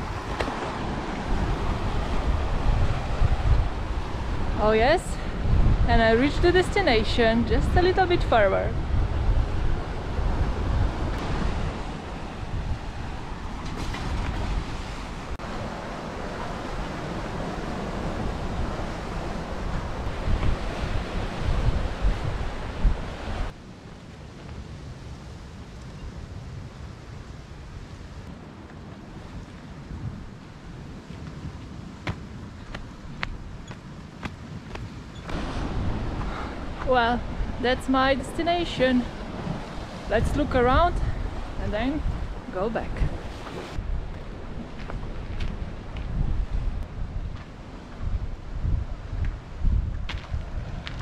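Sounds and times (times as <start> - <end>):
wind buffeting microphone: 0.0 - 51.0
surf breaking on rocky shore: 35.2 - 48.2.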